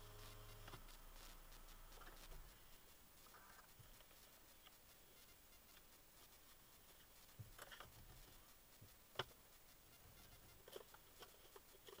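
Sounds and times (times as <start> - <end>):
small animal tapping and scratching: 6.8 - 12.0.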